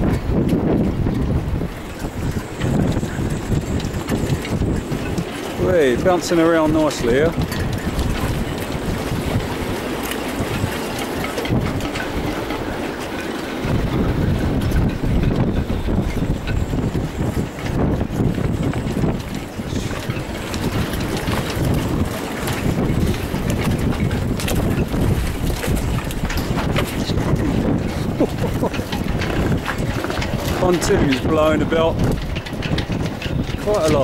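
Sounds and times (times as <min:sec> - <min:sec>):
choppy water around boats: 0:00.0 - 0:34.0
wind buffeting microphone: 0:00.0 - 0:34.0.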